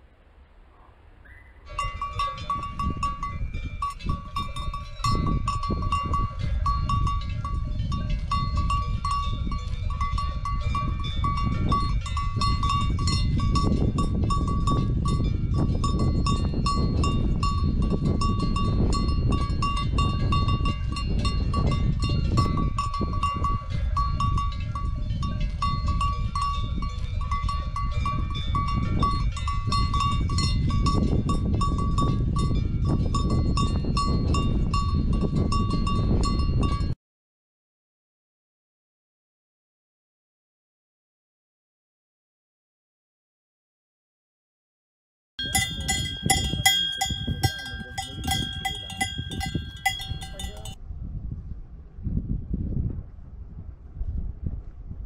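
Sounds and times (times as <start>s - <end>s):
cattle bells clanking: 1.7s - 37.0s, 45.4s - 50.8s.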